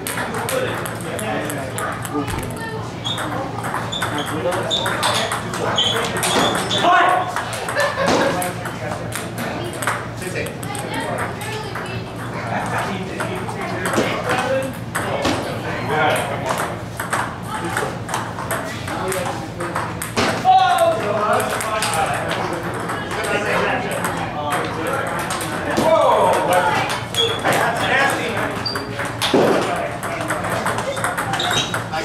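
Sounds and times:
table tennis balls clicking: 0:00.0 - 0:12.4, 0:16.1 - 0:32.0.

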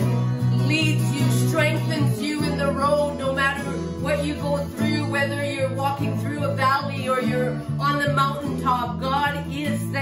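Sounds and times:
acoustic guitar strumming: 0:00.0 - 0:10.0
woman singing: 0:00.0 - 0:10.0.

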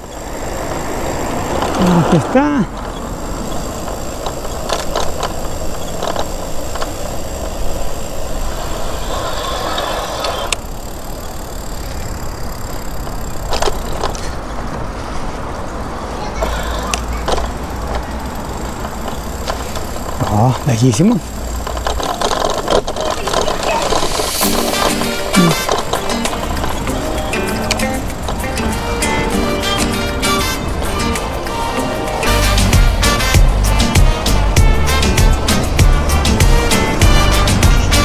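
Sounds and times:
bicycle tyres rolling on pavement: 0:00.0 - 0:38.0
man saying a word: 0:25.4 - 0:25.7.

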